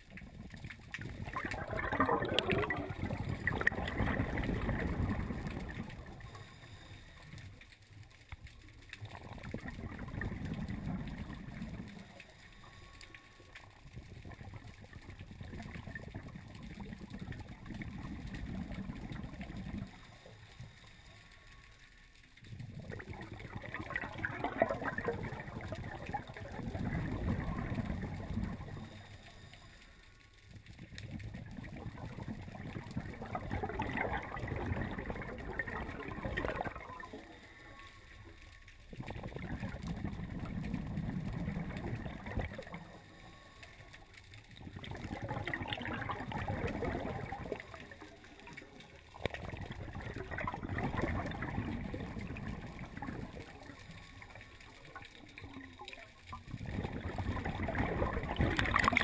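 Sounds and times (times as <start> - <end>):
underwater exhaled bubbles: 0.0 - 59.0.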